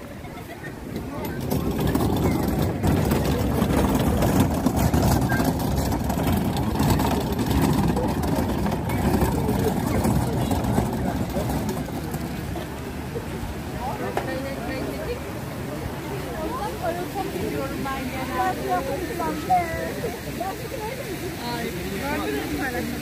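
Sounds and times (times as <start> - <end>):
crowd talking: 0.0 - 23.0
low rumble: 0.8 - 13.8.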